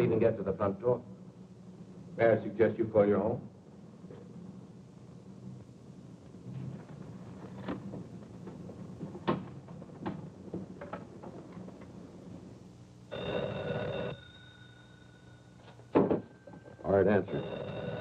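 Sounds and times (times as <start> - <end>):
telephone bell ringing: 13.1 - 18.0.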